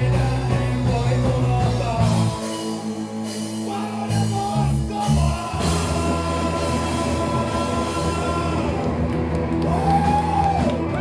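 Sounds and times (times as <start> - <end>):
bass guitar: 0.0 - 11.0
drums: 0.0 - 11.0
electric guitar: 0.0 - 11.0.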